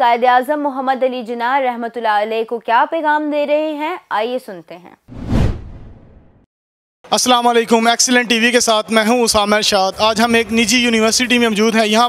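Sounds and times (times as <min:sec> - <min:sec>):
whoosh sound effect: 0:05.1 - 0:06.4.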